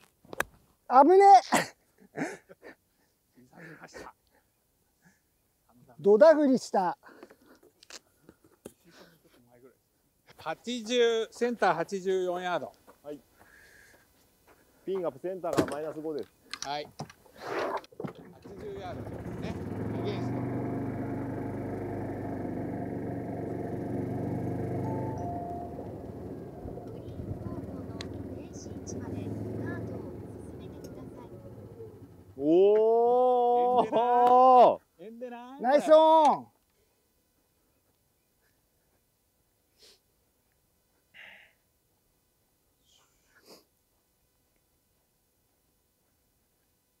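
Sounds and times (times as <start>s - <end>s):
engine hum: 18.2s - 32.6s.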